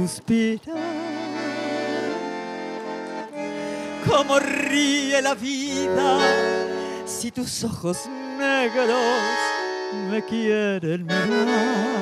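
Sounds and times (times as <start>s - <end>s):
person singing: 0.0s - 2.7s, 3.3s - 12.0s
bandoneon sustained chord: 0.7s - 12.0s.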